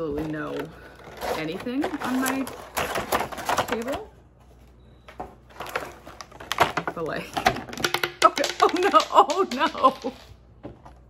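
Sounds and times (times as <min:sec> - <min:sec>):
packaging rustling and clicking: 0:00.1 - 0:04.1, 0:05.1 - 0:07.9.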